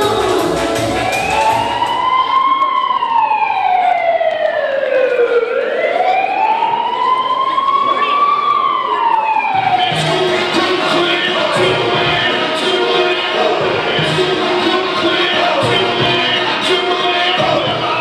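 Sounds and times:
dance music beat: 0:00.0 - 0:02.2, 0:09.6 - 0:18.0
siren sound effect: 0:00.8 - 0:12.5.

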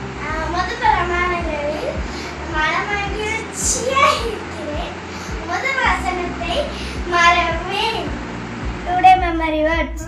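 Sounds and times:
girl singing: 0:00.2 - 0:08.1.

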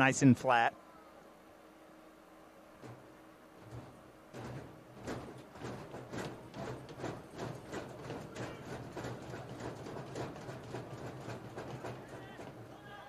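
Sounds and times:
low steady hum: 0:00.0 - 0:13.0
sharp knocks: 0:02.8 - 0:12.7.

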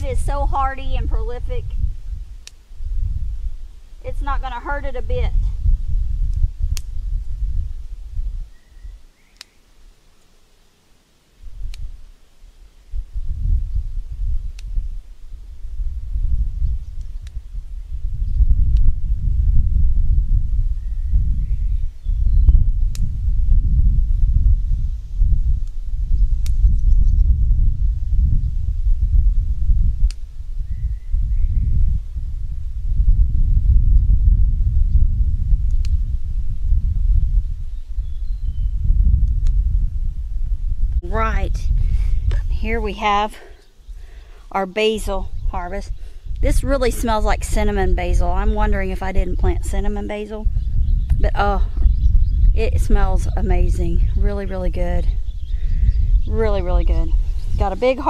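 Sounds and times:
wind buffeting microphone: 0:00.0 - 0:09.4, 0:11.4 - 0:58.0.

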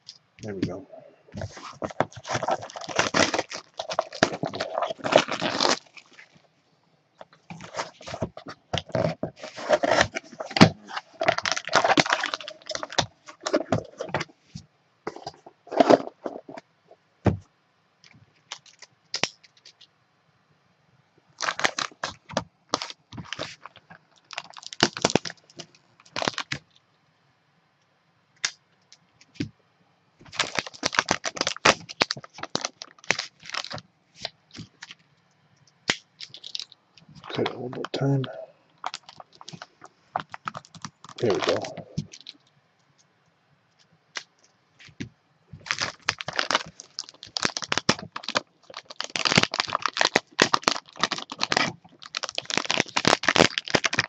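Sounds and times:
packaging scraping and cracking: 0:01.4 - 0:06.4, 0:07.2 - 0:14.3, 0:15.1 - 0:16.6, 0:18.5 - 0:19.8, 0:21.4 - 0:26.6, 0:30.3 - 0:33.8, 0:35.9 - 0:42.4, 0:45.6 - 0:54.0
plastic wrap crinkling: 0:01.4 - 0:06.4, 0:07.2 - 0:14.3, 0:18.4 - 0:19.8, 0:21.4 - 0:26.6, 0:30.2 - 0:35.0, 0:35.9 - 0:42.4, 0:44.2 - 0:54.0.

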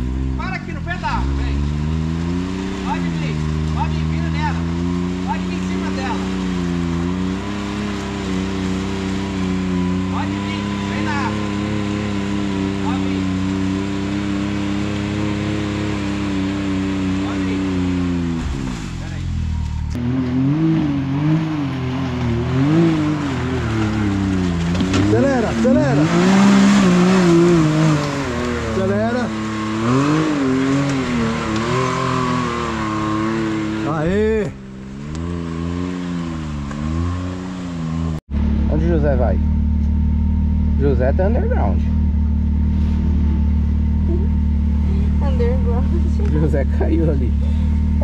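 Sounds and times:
engine revving under load: 0:00.0 - 0:48.0.

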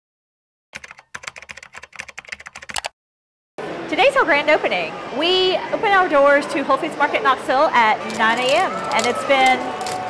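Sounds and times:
keyboard typing clicks: 0:00.8 - 0:02.9.

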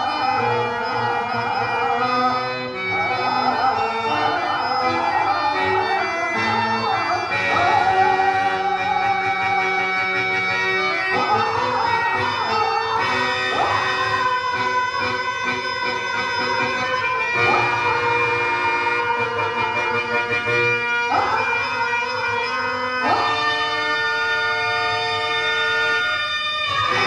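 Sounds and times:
harmonium playing: 0:00.0 - 0:27.0.

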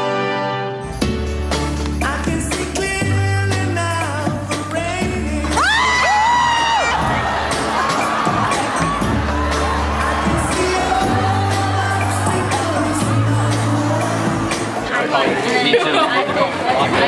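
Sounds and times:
backing track with steady bass: 0:00.9 - 0:15.1
man singing: 0:02.0 - 0:06.9, 0:09.0 - 0:14.8
audience cheering: 0:05.5 - 0:13.2.

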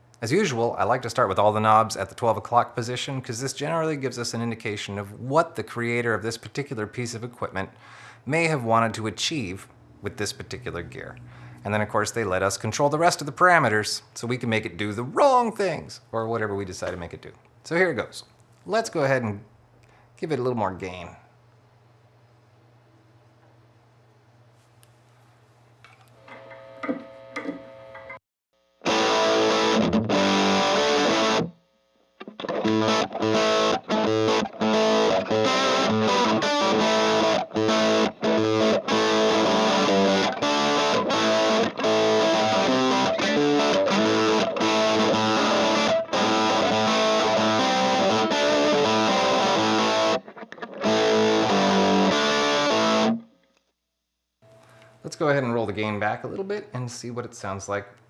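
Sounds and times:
overdriven electric guitar: 0:28.8 - 0:31.5, 0:32.2 - 0:53.2.

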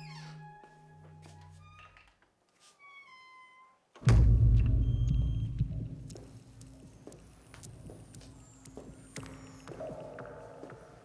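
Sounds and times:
loud deep thud: 0:04.0 - 0:05.6.

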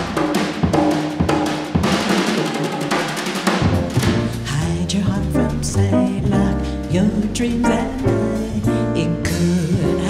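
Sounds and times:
jazz trio playing: 0:03.3 - 0:10.0
upright bass notes: 0:03.6 - 0:10.0.

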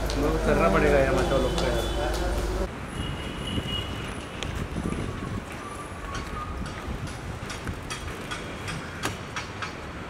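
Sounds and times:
street background noise: 0:00.0 - 0:10.0.

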